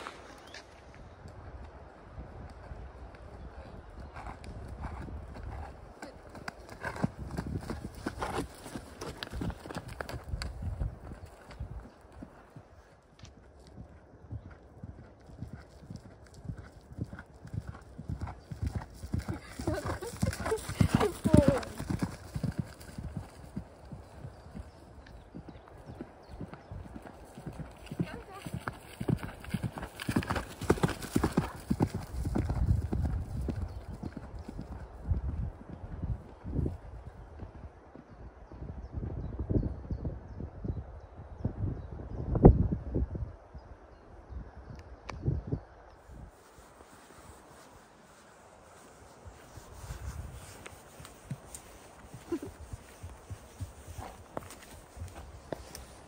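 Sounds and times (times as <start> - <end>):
horse hoofbeats on dirt: 3.8 - 38.2, 49.4 - 56.0.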